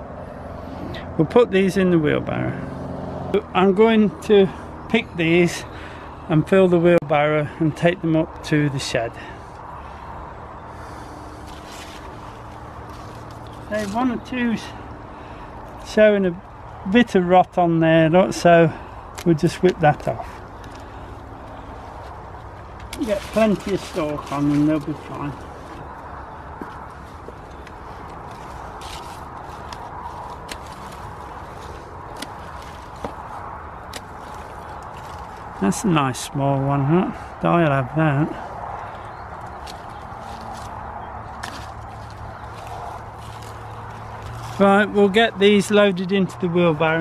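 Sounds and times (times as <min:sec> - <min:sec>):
outdoor background noise: 0:00.0 - 0:47.0
rustling of dry vines and leaves: 0:09.1 - 0:17.0, 0:18.3 - 0:36.4, 0:37.2 - 0:46.2.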